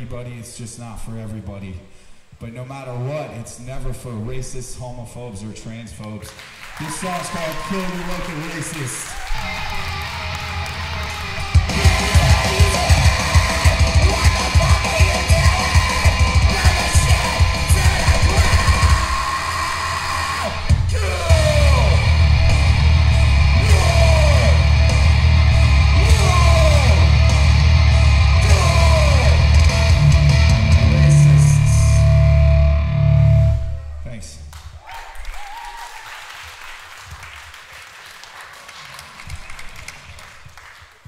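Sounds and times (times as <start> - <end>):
shouted vocals: 6.7 - 32.0
punk band playing live: 9.9 - 19.2, 20.5 - 33.4
fast pounding drum beat: 11.5 - 19.2, 20.7 - 22.4.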